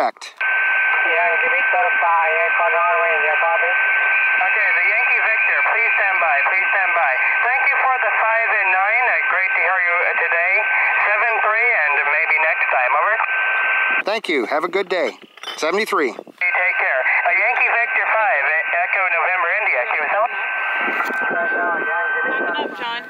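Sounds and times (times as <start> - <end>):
radio hiss: 0.0 - 15.2, 16.2 - 23.0
noisy radio voice: 0.0 - 23.0.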